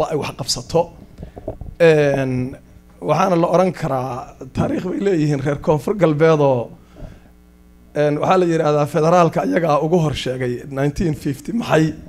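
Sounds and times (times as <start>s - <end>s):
man speaking into a microphone: 0.0s - 1.0s, 1.8s - 6.8s, 8.0s - 12.0s
electrical mains hum: 0.0s - 12.0s.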